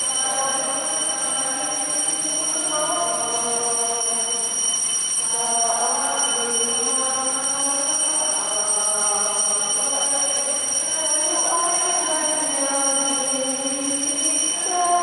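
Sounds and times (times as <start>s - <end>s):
voices singing a hymn: 0.0s - 15.0s.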